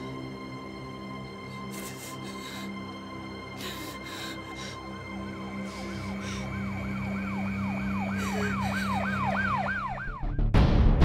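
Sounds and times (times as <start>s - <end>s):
low musical drone: 0.0s - 10.4s
siren yelping: 5.4s - 10.3s.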